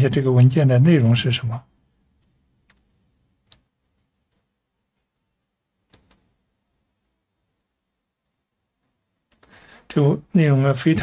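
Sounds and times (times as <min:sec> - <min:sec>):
computer mouse clicks: 0:05.9 - 0:06.3.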